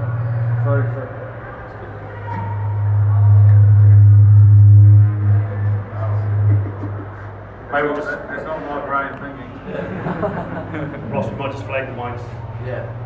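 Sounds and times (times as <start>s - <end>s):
loud low hum from microphone: 0.0s - 13.0s.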